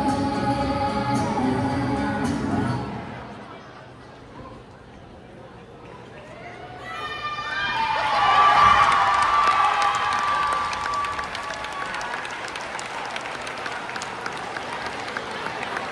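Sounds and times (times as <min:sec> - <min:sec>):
crowd cheering and shouting: 0:06.2 - 0:15.9
crowd applause: 0:07.8 - 0:15.9.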